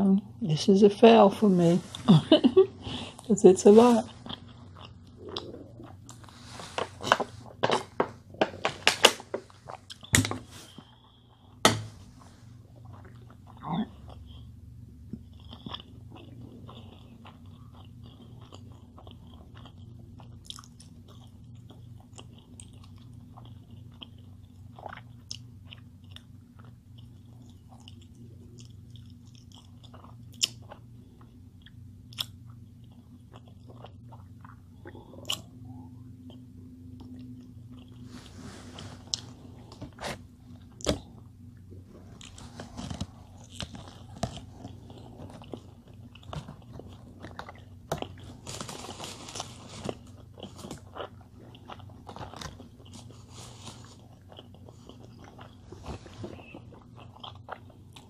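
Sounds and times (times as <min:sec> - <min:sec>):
steady low hum: 0:00.0 - 0:58.0
person chewing and biting: 0:04.2 - 0:11.9, 0:12.6 - 0:36.4, 0:38.8 - 0:58.0
loud crinkly clicks and crackles: 0:42.2 - 0:45.6, 0:46.2 - 0:50.9.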